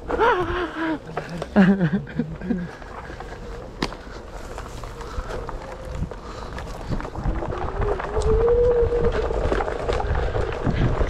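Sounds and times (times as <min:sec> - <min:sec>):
tyre rumbling on dirt trail: 0:00.0 - 0:11.0
wind on microphone: 0:04.8 - 0:11.0.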